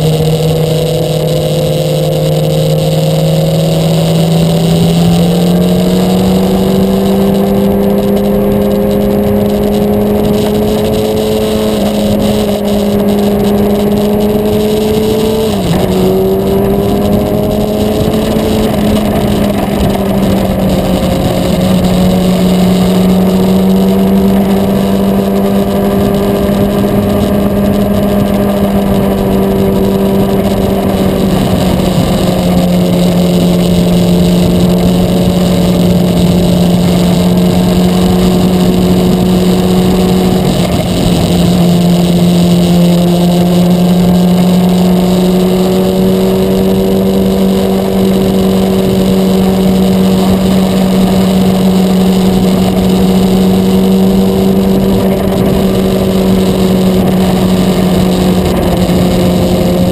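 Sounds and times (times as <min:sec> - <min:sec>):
motorcycle engine: 0:00.0 - 0:59.9
wind rushing: 0:03.5 - 0:44.4.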